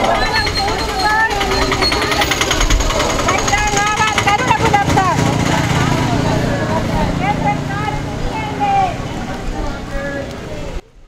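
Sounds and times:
fast even rattle: 0.0s - 8.2s
women chanting slogans: 0.0s - 10.0s.

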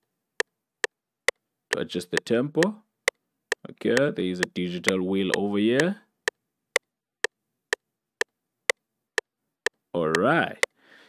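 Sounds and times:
metronome clicking: 1.7s - 2.8s, 3.5s - 6.0s, 10.1s - 10.3s.

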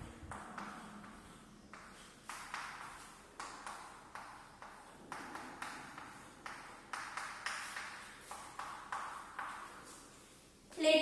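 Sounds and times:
chalk tapping on blackboard: 0.1s - 10.4s.

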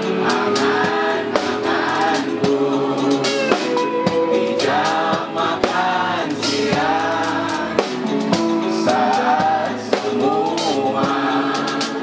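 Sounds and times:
group singing: 0.0s - 12.0s
live band playing: 0.0s - 12.0s.

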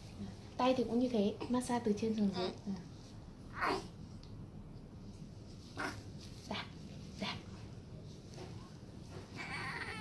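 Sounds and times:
baby crying: 9.4s - 10.0s.

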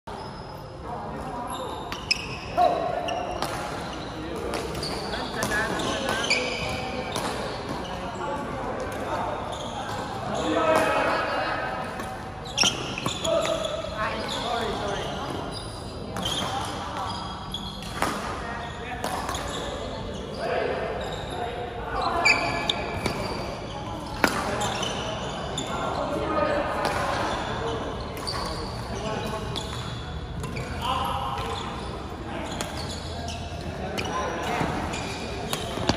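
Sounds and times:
shoe squeaks: 0.1s - 8.4s, 9.1s - 11.6s, 12.3s - 35.9s
murmur of voices: 0.1s - 35.9s
rackets hitting shuttlecock: 17.8s - 18.4s, 24.1s - 24.8s, 34.0s - 35.9s.

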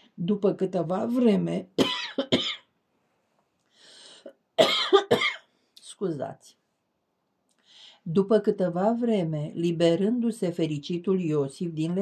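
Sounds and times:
person coughing loudly: 1.8s - 2.7s, 4.6s - 5.5s
person breathing in: 3.6s - 4.3s.

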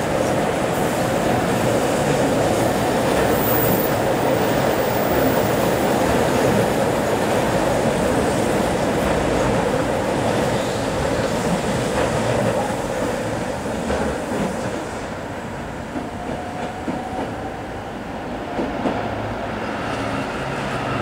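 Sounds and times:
train running through curve: 0.0s - 21.0s.

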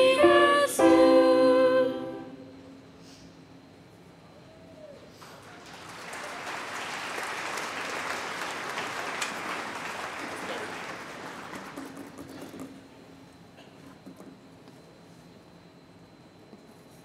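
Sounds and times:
audience applauding: 5.2s - 12.3s.

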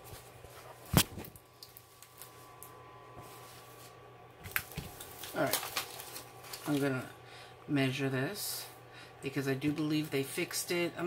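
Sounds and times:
soft handling noises: 0.0s - 7.1s
faint steady hum: 0.0s - 11.0s.

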